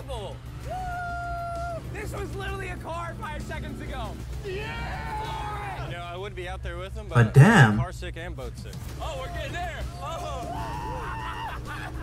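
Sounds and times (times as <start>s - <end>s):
background music: 7.1s - 7.9s
person speaking: 7.2s - 7.9s.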